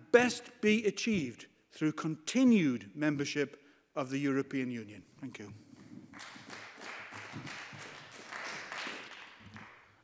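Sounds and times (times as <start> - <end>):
light applause: 6.1 - 10.0.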